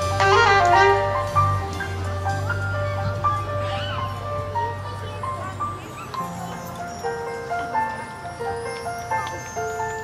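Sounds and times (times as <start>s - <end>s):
live band playing instrumental: 0.0s - 10.0s.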